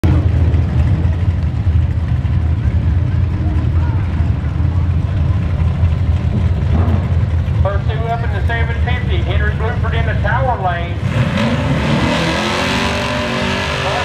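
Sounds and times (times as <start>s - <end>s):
drag car engines idling: 0.0s - 11.8s.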